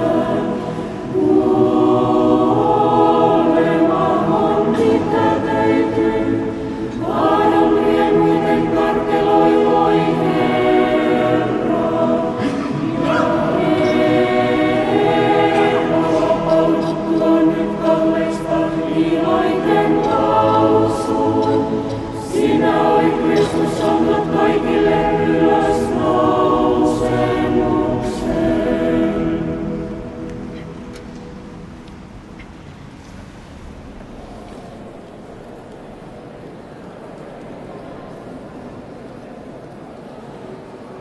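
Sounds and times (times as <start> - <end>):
choir singing unaccompanied: 0.0 - 32.4.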